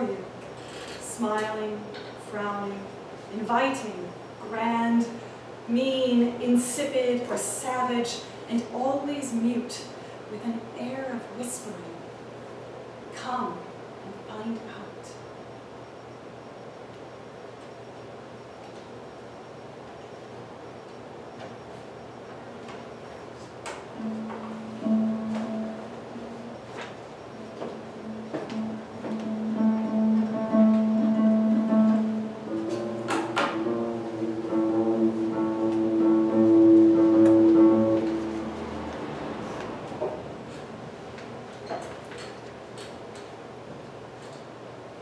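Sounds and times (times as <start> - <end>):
harp notes ringing: 23.9 - 39.4.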